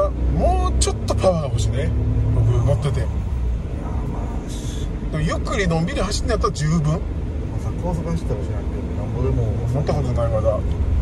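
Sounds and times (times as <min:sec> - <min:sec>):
car engine and road rumble: 0:00.0 - 0:11.0.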